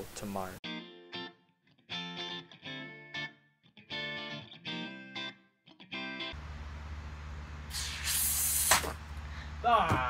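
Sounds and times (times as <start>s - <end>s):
loud hiss of gas and foam: 7.7s - 9.0s
sharp pop: 8.6s - 9.0s.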